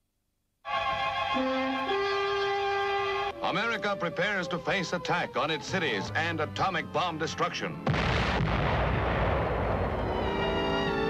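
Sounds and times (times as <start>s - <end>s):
explosion blast and rumbling roar: 7.9s - 10.4s.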